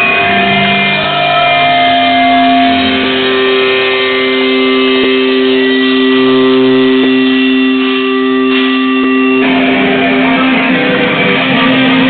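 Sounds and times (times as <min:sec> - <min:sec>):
distorted electric guitar feedback: 0:00.0 - 0:12.0.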